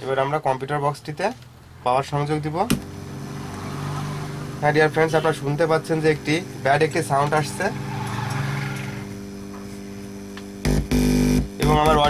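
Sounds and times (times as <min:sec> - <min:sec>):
speaker mains hum: 0:00.0 - 0:12.0
loud low buzz: 0:02.4 - 0:12.0.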